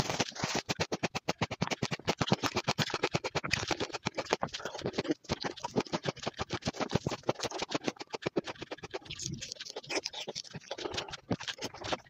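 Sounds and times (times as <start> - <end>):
chewing orange slice crunches: 0.1 - 12.0.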